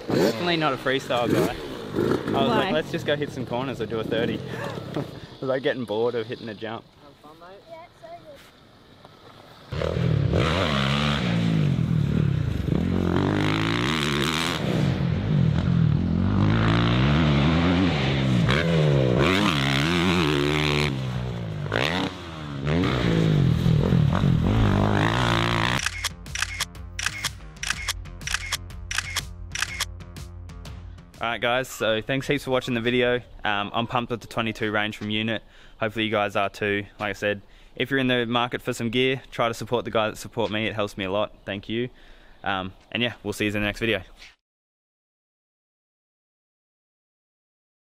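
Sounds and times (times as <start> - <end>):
dirt bike engine revving: 0.0 - 2.8, 9.6 - 26.6
music with quick beat: 25.9 - 31.2.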